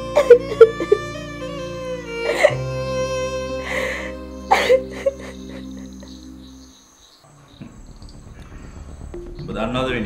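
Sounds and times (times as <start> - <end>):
low background music: 0.0 - 10.0
crickets chirping: 4.0 - 9.5.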